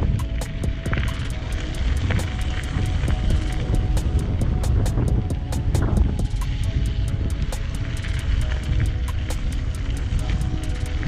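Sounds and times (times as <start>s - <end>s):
bicycle tyres on gravel: 0.0s - 11.0s
bike clicks and rattles: 0.0s - 11.0s
wind rumble on microphone: 0.0s - 11.0s.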